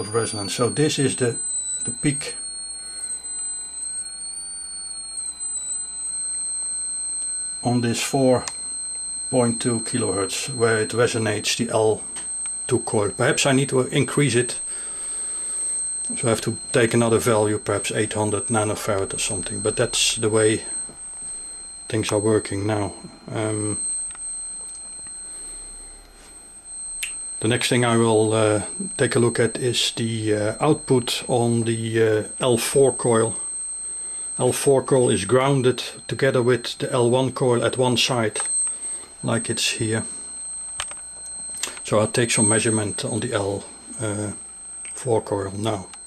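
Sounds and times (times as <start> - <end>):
transformer coil high-pitched whine: 0.0 - 46.0.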